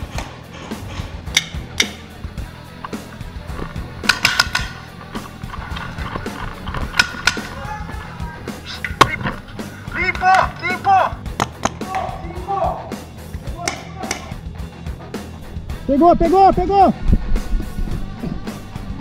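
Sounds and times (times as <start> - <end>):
background music: 0.0 - 19.0
clattering movement: 2.7 - 11.8
paintball markers firing: 4.0 - 4.8, 5.7 - 7.5, 11.3 - 12.0.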